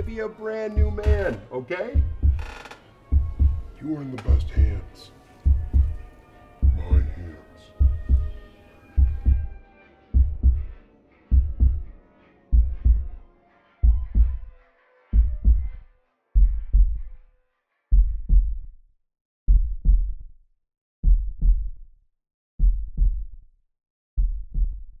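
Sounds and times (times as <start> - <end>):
heartbeat double thumps: 0.0 - 1.4, 2.0 - 3.7, 4.3 - 8.4, 9.0 - 13.2, 13.8 - 14.5, 15.1 - 15.8, 16.4 - 17.2, 17.9 - 18.8, 19.5 - 20.3, 21.0 - 21.8, 22.6 - 23.4, 24.2 - 25.0.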